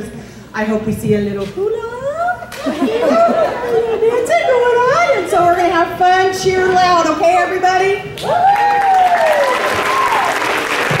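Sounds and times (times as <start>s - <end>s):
audience applauding and cheering: 8.1s - 11.0s
person whooping: 8.2s - 10.5s.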